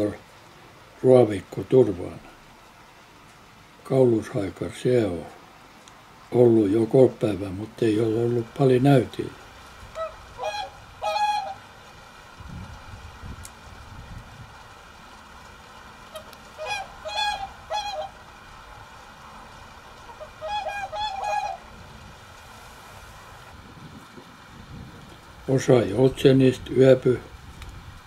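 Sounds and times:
swans bugling honks: 9.9s - 11.8s, 16.0s - 18.6s, 19.8s - 22.4s.

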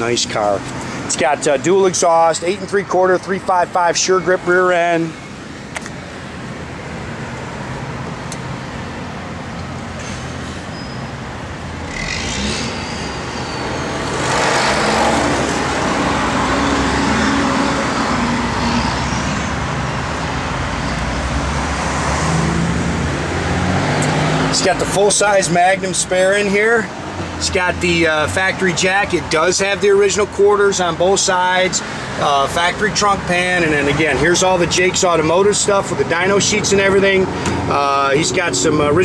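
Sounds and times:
road traffic passing: 0.0s - 39.0s.

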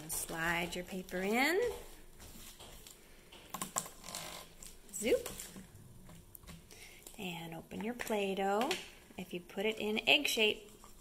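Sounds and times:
plastic crackles: 2.8s - 7.2s.

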